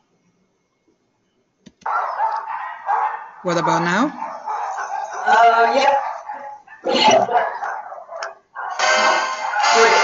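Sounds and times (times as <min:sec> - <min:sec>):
dog calling: 0:01.8 - 0:08.8.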